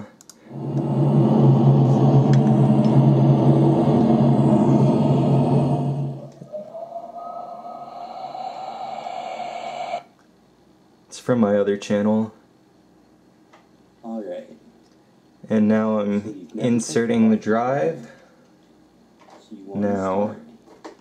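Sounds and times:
synthesized droning music: 0:00.4 - 0:10.0.

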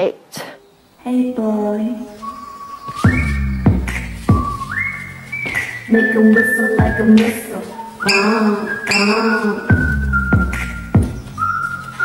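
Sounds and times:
whistled melody: 0:02.0 - 0:12.0
sparse beat: 0:02.9 - 0:11.8.

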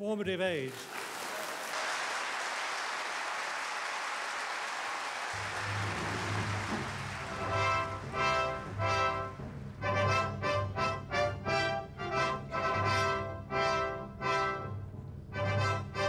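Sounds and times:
audience applauding: 0:00.6 - 0:10.7
music melody: 0:05.6 - 0:16.0.

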